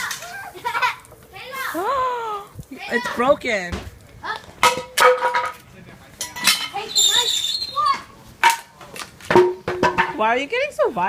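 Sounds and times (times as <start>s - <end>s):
children's voices: 0.0s - 3.4s, 4.2s - 4.6s, 6.7s - 8.2s
knocks and clanks on hard surface: 9.3s - 10.2s.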